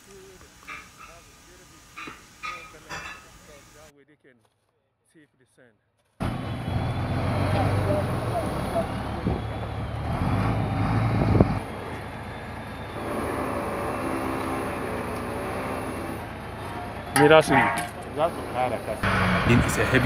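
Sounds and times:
truck engine running: 0:06.2 - 0:20.0.

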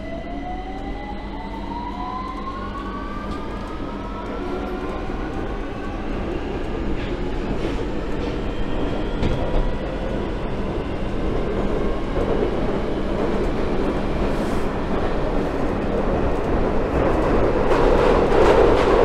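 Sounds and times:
train traction motor whine: 0:00.0 - 0:13.2
train rumble: 0:00.0 - 0:19.0.

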